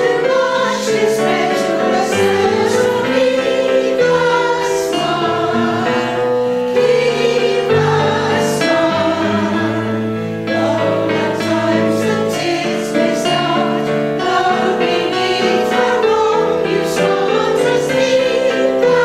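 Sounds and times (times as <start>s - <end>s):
women's choir singing: 0.0s - 19.0s.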